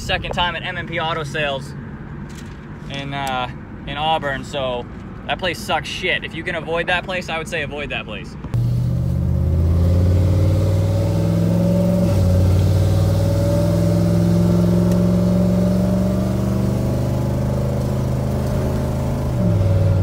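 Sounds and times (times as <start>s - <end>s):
truck engine accelerating: 8.6s - 20.0s.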